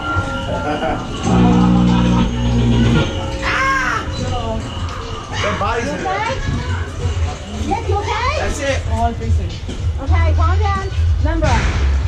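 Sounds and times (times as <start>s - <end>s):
wordless shrieking voices: 1.2s - 7.0s.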